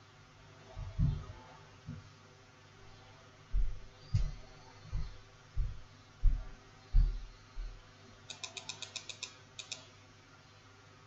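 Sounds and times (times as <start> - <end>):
computer mouse clicking: 8.3 - 9.9.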